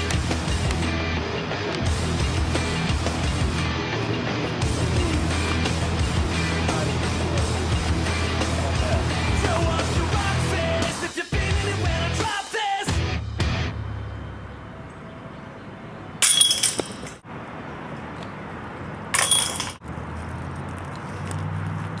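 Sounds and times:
background music: 0:00.0 - 0:13.9
metallic chain jangle: 0:16.2 - 0:17.2, 0:19.2 - 0:21.4.

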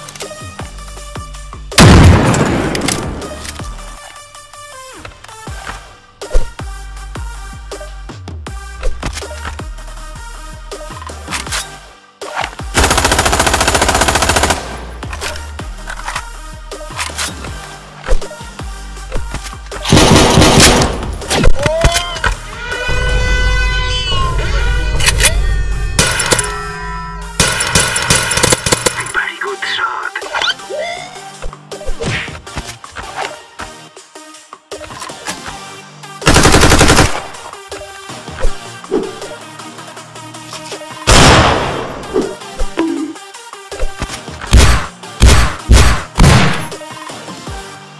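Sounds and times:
background music: 0:00.0 - 0:47.9
submachine gun automatic burst: 0:36.3 - 0:37.2.

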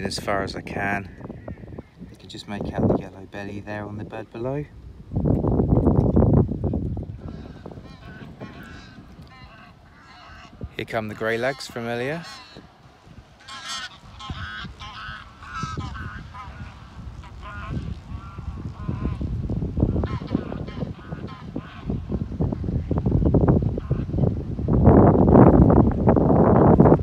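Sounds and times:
geese honking: 0:07.2 - 0:19.3, 0:19.9 - 0:22.0.

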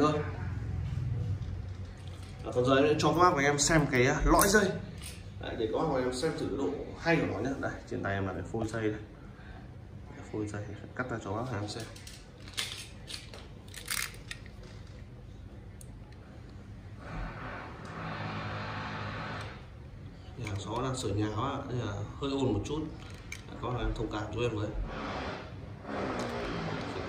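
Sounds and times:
steady low hum: 0:00.0 - 0:27.0
machine hum: 0:13.6 - 0:20.4.

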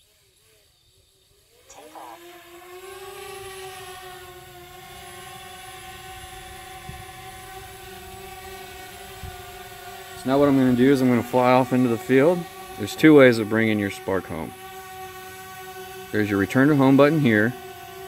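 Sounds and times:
drone propeller hum: 0:00.0 - 0:18.0.

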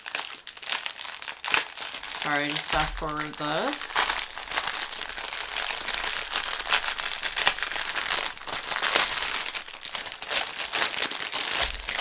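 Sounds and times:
plastic wrapping crinkling: 0:00.0 - 0:12.0.

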